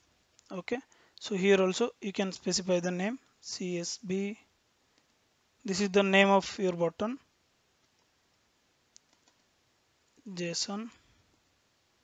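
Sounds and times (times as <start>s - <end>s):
computer mouse click: 8.9s - 9.5s.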